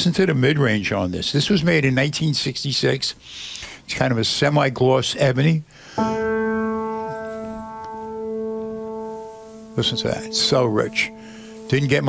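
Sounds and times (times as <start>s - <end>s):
grand piano chord ringing: 6.0s - 12.0s.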